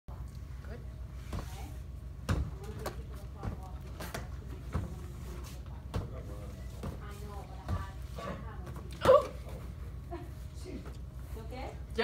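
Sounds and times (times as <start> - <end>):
low steady hum: 0.1 - 12.0.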